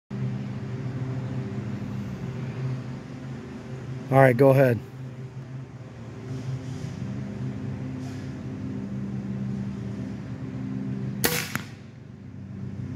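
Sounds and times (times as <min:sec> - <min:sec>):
steady low hum: 0:00.1 - 0:12.9
air rifle firing crack: 0:11.2 - 0:11.9.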